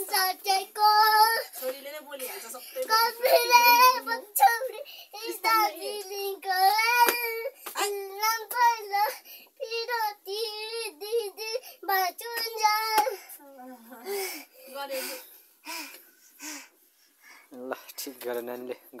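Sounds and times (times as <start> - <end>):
girl singing: 0.0 - 15.8.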